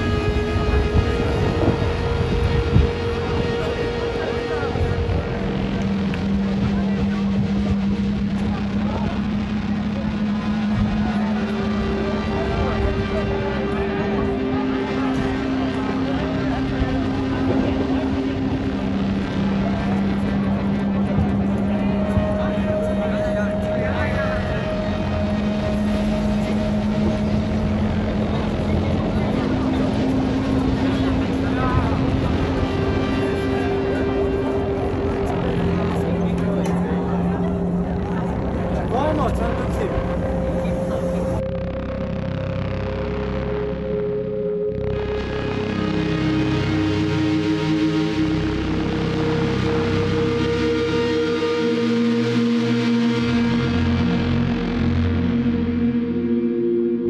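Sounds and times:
people talking: 0:00.0 - 0:56.2
background music of held notes: 0:00.0 - 0:57.0
steady rumbling noise: 0:00.0 - 0:57.0.

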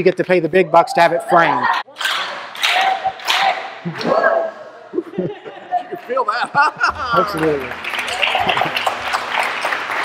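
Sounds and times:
room of people laughing: 0:04.8 - 0:09.5.

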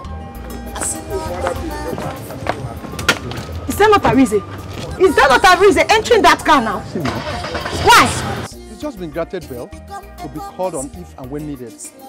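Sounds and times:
background music: 0:00.0 - 0:12.0
heeled footsteps on brick: 0:00.4 - 0:05.4.

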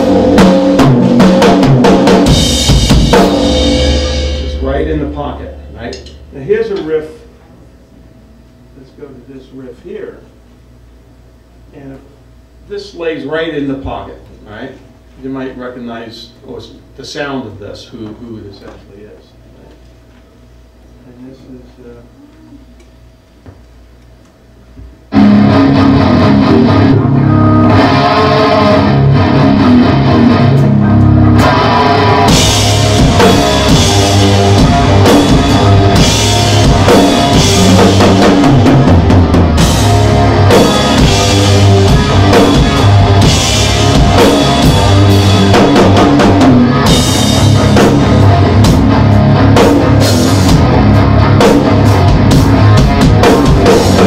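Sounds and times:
hard rock music with guitar: 0:00.0 - 0:05.1, 0:25.1 - 0:54.0
drum kit playing: 0:00.0 - 0:07.4, 0:25.1 - 0:54.0.

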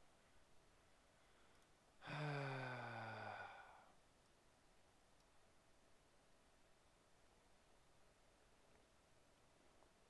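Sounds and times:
man sighing: 0:02.0 - 0:04.0.

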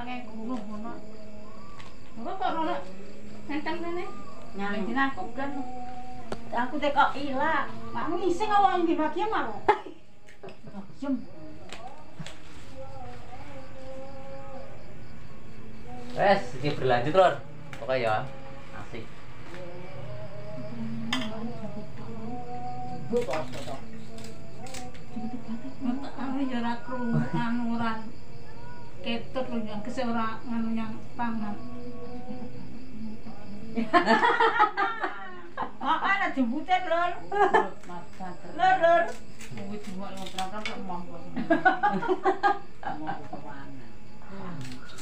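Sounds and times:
person softly singing: 0:00.0 - 0:34.0
people talking: 0:25.1 - 0:28.1, 0:29.0 - 0:32.4, 0:42.8 - 0:44.8.

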